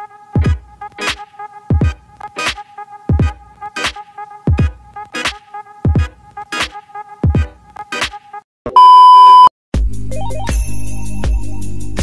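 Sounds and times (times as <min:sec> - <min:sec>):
electronic music beat: 0:00.4 - 0:08.4
electronic beep: 0:08.7 - 0:09.5.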